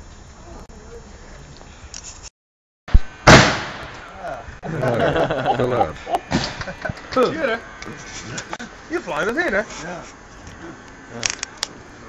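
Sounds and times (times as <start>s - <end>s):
faint background noise: 0.0s - 2.3s, 2.9s - 12.0s
man speaking: 4.1s - 6.2s.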